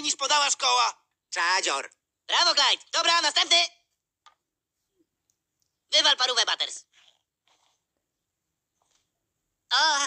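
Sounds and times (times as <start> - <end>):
person speaking: 0.0 - 4.0, 4.8 - 7.2.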